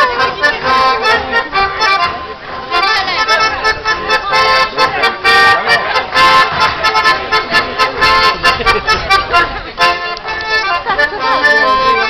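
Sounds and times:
accordion folk dance music: 0.0s - 12.0s
voices: 0.0s - 12.0s.

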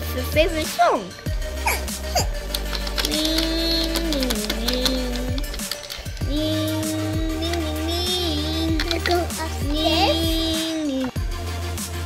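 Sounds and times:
plastic toy pieces clicking: 2.3s - 6.4s, 7.3s - 9.4s.

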